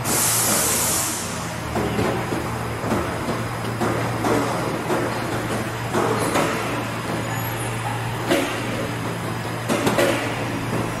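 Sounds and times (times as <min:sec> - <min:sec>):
blow-moulding machine humming: 0:00.0 - 0:11.0
factory noise: 0:00.0 - 0:11.0.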